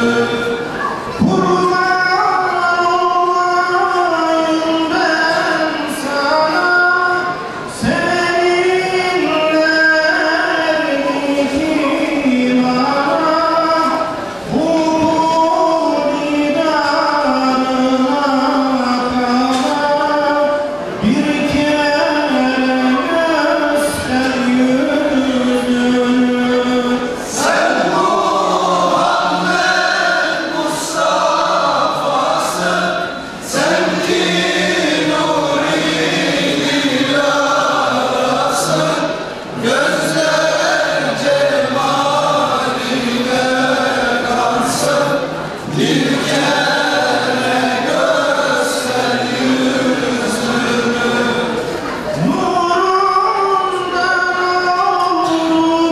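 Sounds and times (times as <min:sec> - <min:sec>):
male choir singing a hymn: 0:00.0 - 0:55.9.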